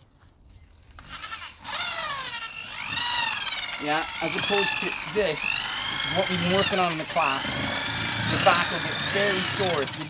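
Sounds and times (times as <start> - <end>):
electric drill mixer whining: 1.0 - 10.0.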